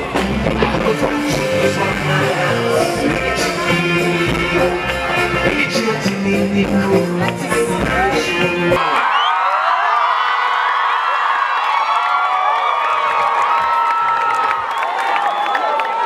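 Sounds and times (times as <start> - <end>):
live band music: 0.0 - 8.9
crowd cheering and screaming: 8.1 - 16.0.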